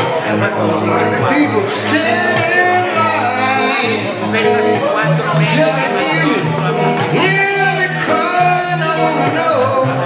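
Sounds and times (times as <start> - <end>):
electric guitar: 0.0 - 10.0
man singing: 0.0 - 10.0.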